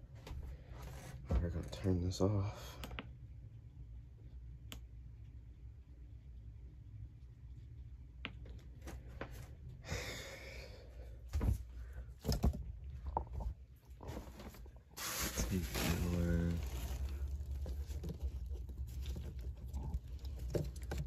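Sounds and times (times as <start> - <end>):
steady low hum: 0.0 - 21.0
handling knocks and rustling: 11.3 - 21.0.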